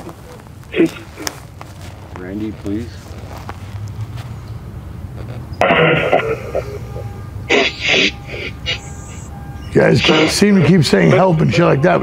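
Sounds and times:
garbled voice-like bursts: 0.7s - 1.3s, 5.6s - 12.0s.

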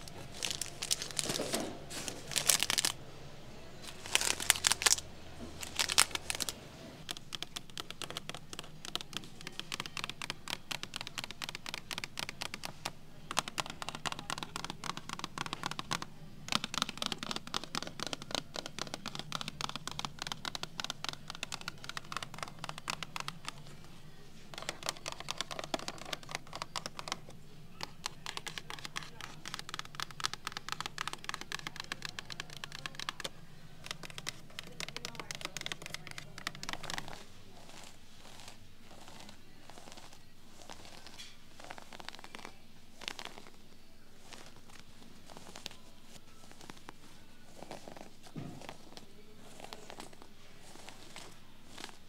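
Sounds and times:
fingernails tapping and scratching boxes: 0.0s - 2.9s, 5.6s - 23.7s, 24.5s - 43.6s
fingernails crinkling plastic sleeves: 0.0s - 3.0s, 3.8s - 52.0s.

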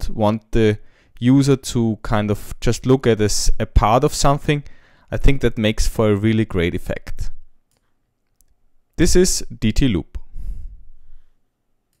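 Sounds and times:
person breathing out: 4.7s - 5.1s, 10.2s - 11.4s.

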